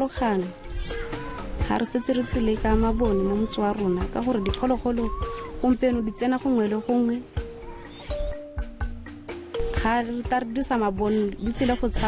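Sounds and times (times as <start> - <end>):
woman speaking: 0.0 - 0.6, 1.6 - 7.3, 9.8 - 12.0
background music: 0.0 - 12.0.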